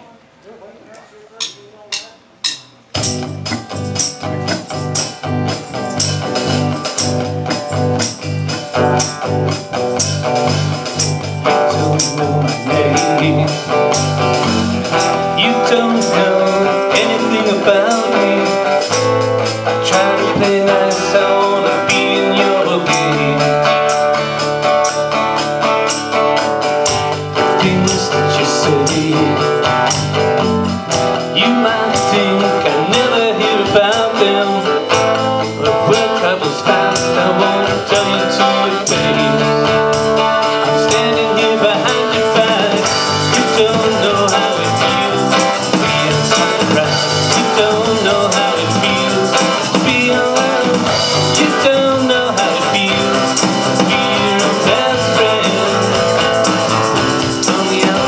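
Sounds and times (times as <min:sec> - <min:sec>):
acoustic guitar: 0:01.0 - 0:58.0
electronic drum kit: 0:01.4 - 0:58.0
bass guitar: 0:01.9 - 0:58.0.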